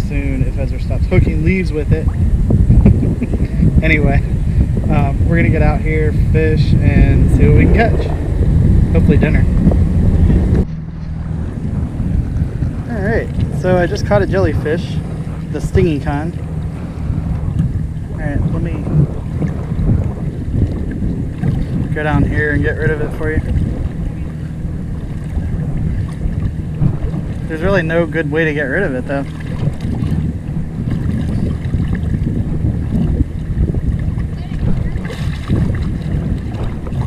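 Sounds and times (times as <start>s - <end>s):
seawater lapping: 0.0s - 37.0s
wind buffeting microphone: 0.0s - 37.0s.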